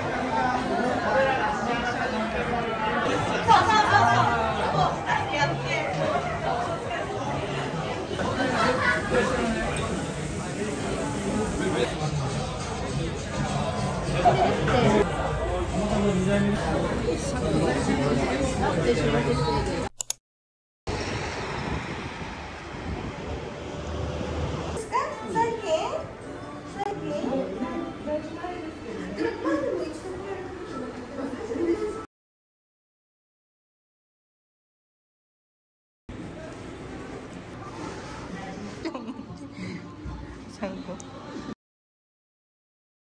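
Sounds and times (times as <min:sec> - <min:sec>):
chatter of many voices: 0:00.0 - 0:19.9, 0:24.8 - 0:32.1, 0:36.2 - 0:41.6.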